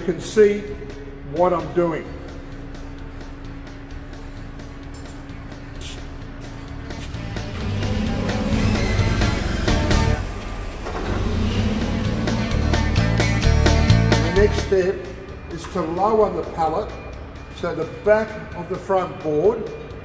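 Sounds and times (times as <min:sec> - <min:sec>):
background music: 0:00.0 - 0:20.0
forklift engine running: 0:02.2 - 0:17.9.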